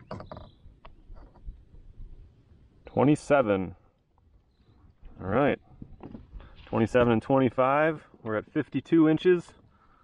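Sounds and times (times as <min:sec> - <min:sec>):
light clicks and knocks in kayak: 0:00.0 - 0:02.1, 0:03.9 - 0:07.4.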